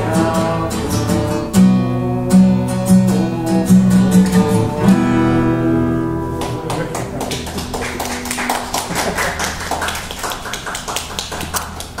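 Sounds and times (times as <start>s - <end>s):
acoustic guitar chord ringing: 0.0s - 9.6s
audience clapping: 6.3s - 12.0s.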